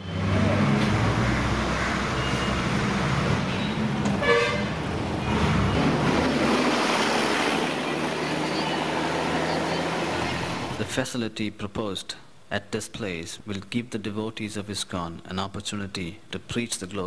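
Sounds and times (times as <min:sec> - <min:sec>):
street traffic: 0:00.0 - 0:11.0
vehicle horn toot: 0:03.6 - 0:04.8.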